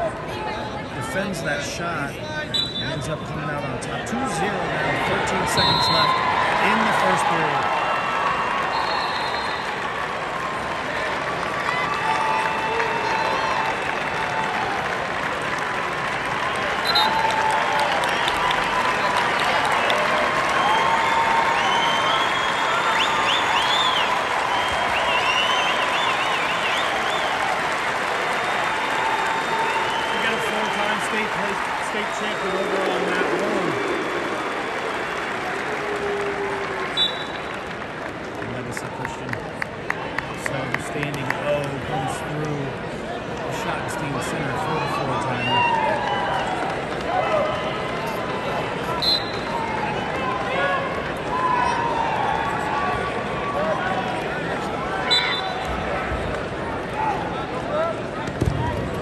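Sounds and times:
crowd cheering and shouting: 0:00.0 - 0:59.0
applause: 0:05.0 - 0:54.8.

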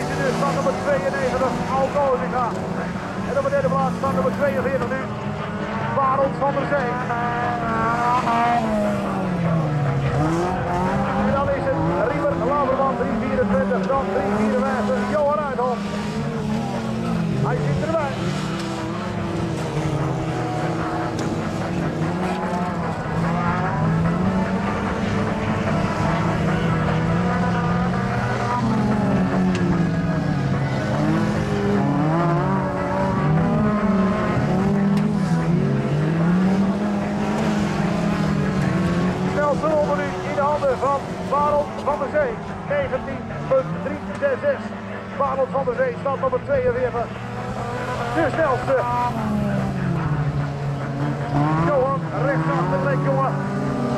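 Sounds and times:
announcer on loudspeaker: 0:00.0 - 0:21.0, 0:22.0 - 0:34.7, 0:35.3 - 0:50.3, 0:51.0 - 0:53.9
distant racing car engines drone: 0:00.0 - 0:53.9.

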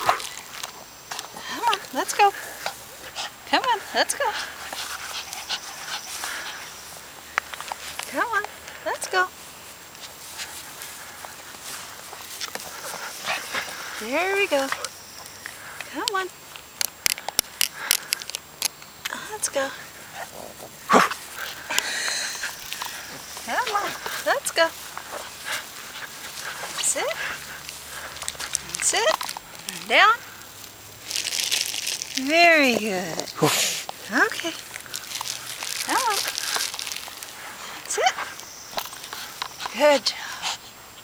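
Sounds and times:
dog rustling on grass: 0:00.0 - 0:15.8, 0:19.3 - 0:39.9
plastic bag crinkling: 0:19.8 - 0:39.6.

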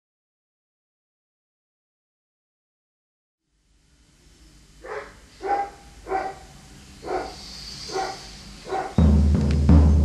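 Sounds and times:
animal barking: 0:04.8 - 0:09.1.

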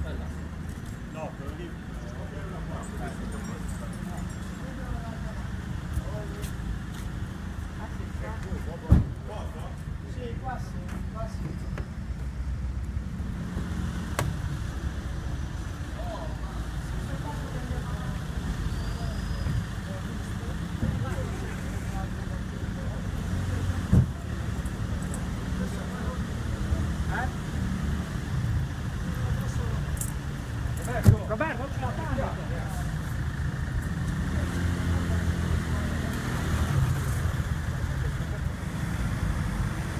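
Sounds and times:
car engine rumbling: 0:00.0 - 0:39.9
traffic: 0:00.0 - 0:39.9
thump: 0:08.9 - 0:09.2, 0:23.9 - 0:24.2.

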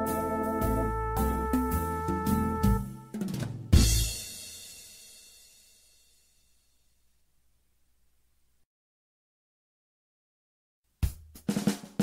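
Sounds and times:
drum fill: 0:00.0 - 0:05.5, 0:11.0 - 0:12.0
bass drum and cymbal crash: 0:00.0 - 0:06.5.

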